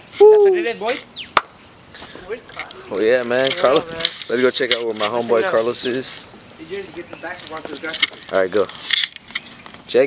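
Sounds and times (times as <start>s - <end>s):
faint voices: 2.0s - 8.8s.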